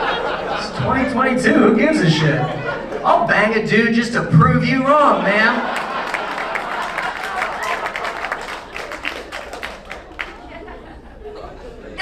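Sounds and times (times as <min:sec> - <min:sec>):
audience applause: 0:05.6 - 0:10.6.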